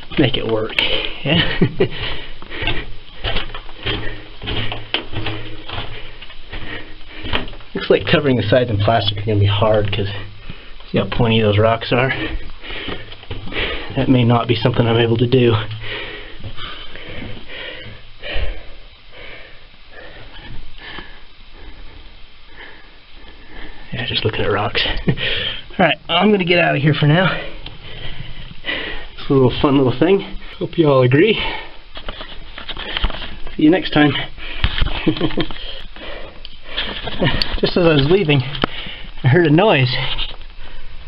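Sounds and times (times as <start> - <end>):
man laughing: 1.2 - 2.2, 34.9 - 35.7
man breathing and sniffing: 1.9 - 7.8, 9.9 - 11.0, 12.0 - 14.0, 15.5 - 24.0, 25.0 - 25.8, 27.2 - 29.2, 31.3 - 33.6, 34.2 - 37.6, 38.4 - 39.2.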